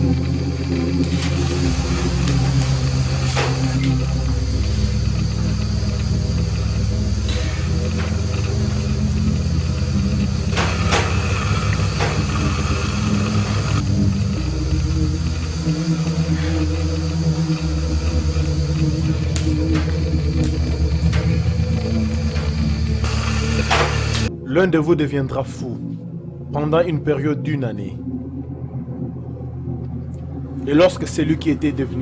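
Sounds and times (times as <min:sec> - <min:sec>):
deep droning bass music: 0:00.0 - 0:32.0.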